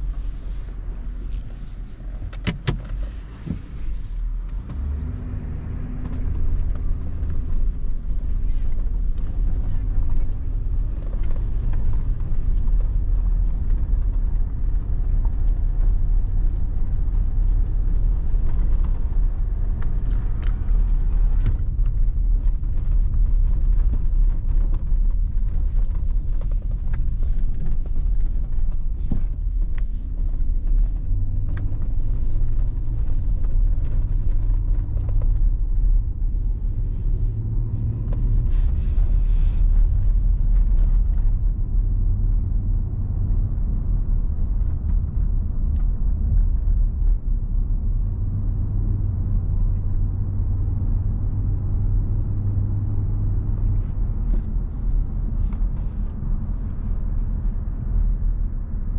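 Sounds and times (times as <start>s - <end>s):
car engine rumble inside cabin: 0.0s - 58.9s.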